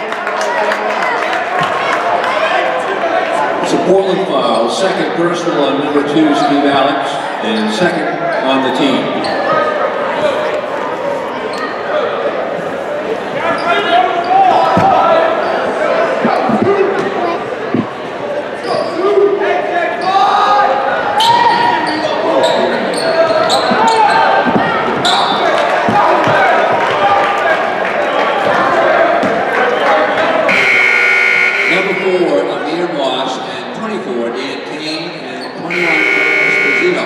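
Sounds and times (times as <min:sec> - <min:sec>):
spectators voices and shouts: 0:05.2 - 0:32.9, 0:35.6 - 0:37.0
shoe squeaks: 0:18.6 - 0:19.0, 0:21.2 - 0:25.6
ball bouncing on hardwood: 0:23.7 - 0:25.0
loud buzzer: 0:30.5 - 0:32.1, 0:35.7 - 0:37.0.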